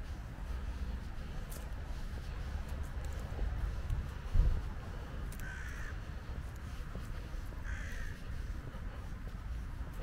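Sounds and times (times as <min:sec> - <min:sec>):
steady low rumble: 0:00.0 - 0:10.0
crow cawing: 0:05.4 - 0:06.1, 0:07.6 - 0:08.5.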